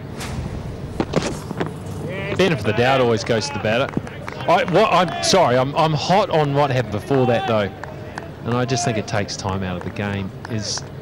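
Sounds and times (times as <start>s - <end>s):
steady noise bed: 0.0s - 11.0s.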